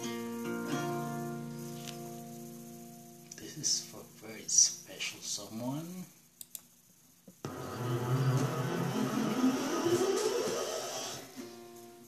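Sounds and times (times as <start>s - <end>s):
acoustic guitar chord strummed: 0.0s - 4.3s, 7.4s - 10.2s.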